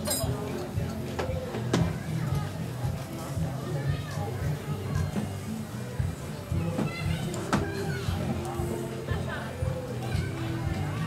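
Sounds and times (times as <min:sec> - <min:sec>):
low background voices: 0:00.0 - 0:11.0.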